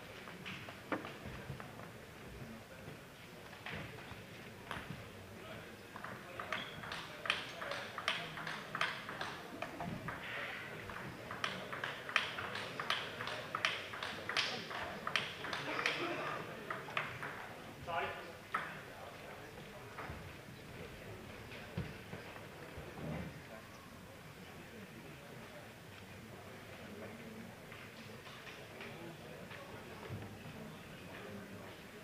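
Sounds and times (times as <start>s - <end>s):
spectators talking: 0.0s - 32.0s
table tennis ball clicking: 6.0s - 10.2s, 10.9s - 15.6s.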